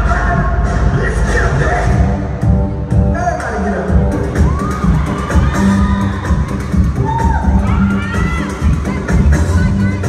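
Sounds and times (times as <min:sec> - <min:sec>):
loud dance music with pounding bass: 0:00.0 - 0:10.0
audience cheering and shouting: 0:03.9 - 0:10.0.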